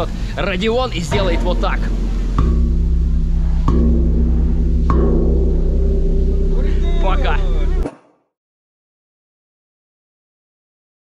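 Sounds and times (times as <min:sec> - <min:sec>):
gong struck with wooden mallet: 0:00.0 - 0:07.8.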